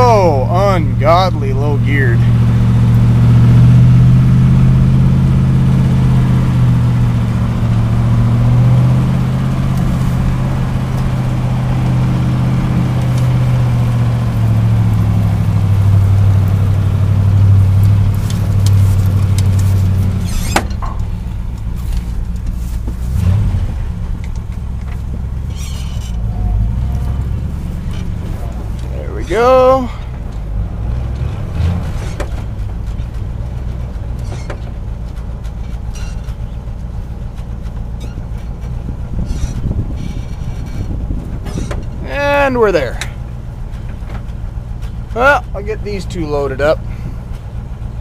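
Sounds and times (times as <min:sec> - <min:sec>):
truck engine drone in cab: 0:00.0 - 0:48.0.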